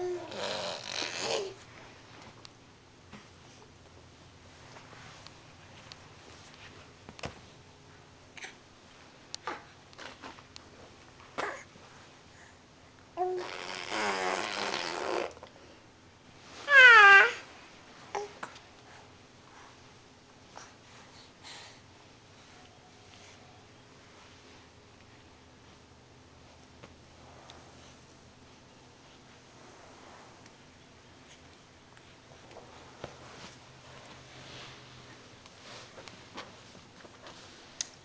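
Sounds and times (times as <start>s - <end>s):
baby vocalizing: 0.0s - 1.6s.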